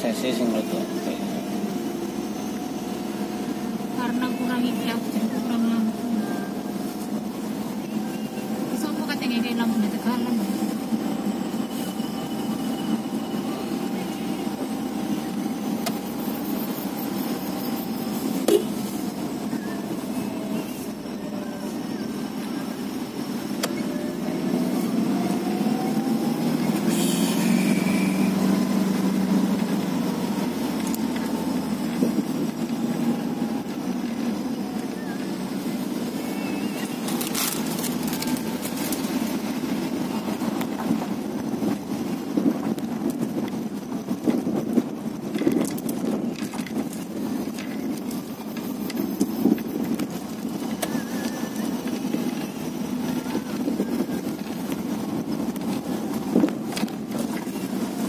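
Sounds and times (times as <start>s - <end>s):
car engine running: 0.0s - 58.0s
tyres rolling on rough road: 0.0s - 58.0s.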